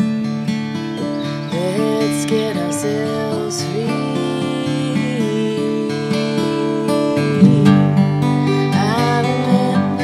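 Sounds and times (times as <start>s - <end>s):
strummed acoustic guitar: 0.0s - 10.0s
woman singing long note: 1.6s - 8.1s.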